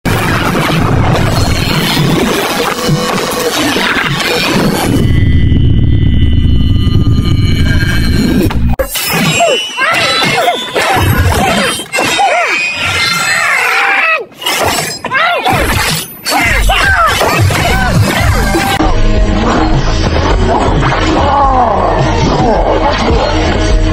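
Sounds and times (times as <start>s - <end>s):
action film music: 0.1s - 13.2s, 16.3s - 23.9s
gliding squealing sounds: 1.3s - 18.9s
heavy low rumble: 4.6s - 8.8s.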